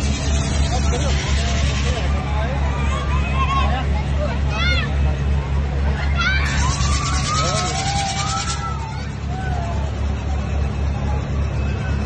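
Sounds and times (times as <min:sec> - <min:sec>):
low engine-like hum: 0:00.0 - 0:12.0
voices calling out: 0:00.0 - 0:12.0.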